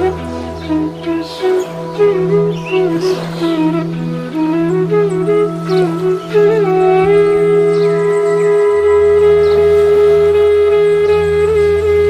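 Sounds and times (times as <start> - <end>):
flute long note: 0.0 - 12.0
low sustained drone: 0.0 - 12.0.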